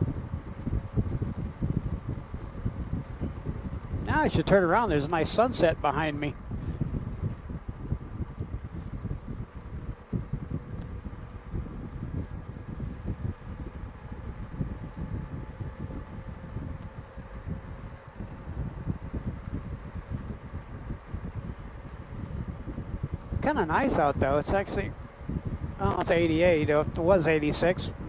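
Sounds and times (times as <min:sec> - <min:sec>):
motorcycle engine hum: 0:00.0 - 0:28.0
wind buffeting microphone: 0:00.0 - 0:28.0.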